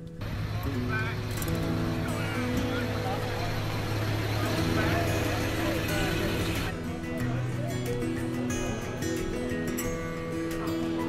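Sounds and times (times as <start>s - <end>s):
vehicle humming: 0.0s - 6.9s
music of long held notes: 0.0s - 11.0s
indistinct chatter: 0.2s - 11.0s.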